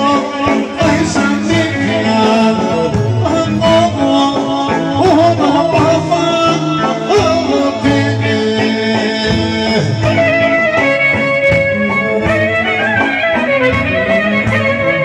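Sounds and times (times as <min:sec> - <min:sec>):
folk dance music with fiddle: 0:00.0 - 0:15.0.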